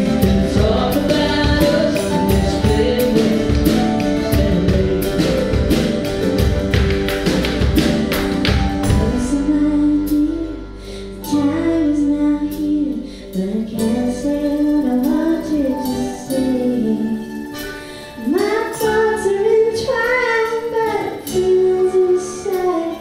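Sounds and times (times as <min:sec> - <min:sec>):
woman singing slow song: 0:00.0 - 0:06.1, 0:08.8 - 0:17.5, 0:18.2 - 0:23.0
live band: 0:00.0 - 0:23.0
mandolin: 0:00.0 - 0:23.0.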